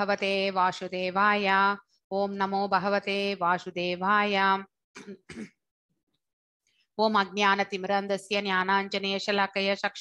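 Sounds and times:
woman clearing her throat: 0:05.0 - 0:05.6.

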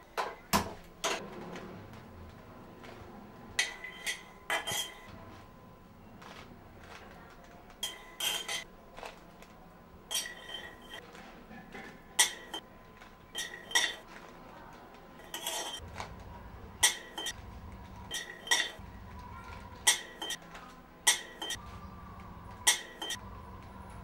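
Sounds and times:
spatula clinking metal pan: 0:16.8 - 0:17.4, 0:18.1 - 0:18.8, 0:19.8 - 0:20.4, 0:21.1 - 0:21.6, 0:22.7 - 0:23.2.

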